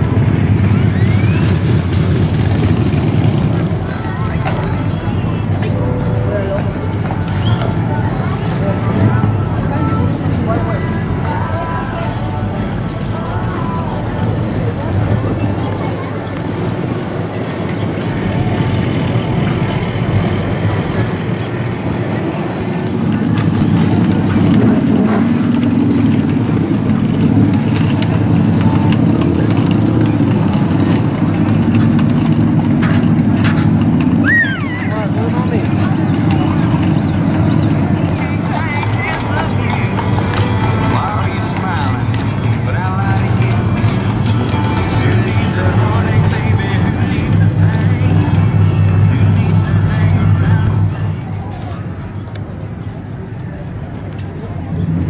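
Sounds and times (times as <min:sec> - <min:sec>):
horses' hooves on brick pavement: 0:00.0 - 0:55.0
motor vehicles: 0:00.0 - 0:55.0
people's voices: 0:00.0 - 0:55.0
music: 0:38.3 - 0:49.9.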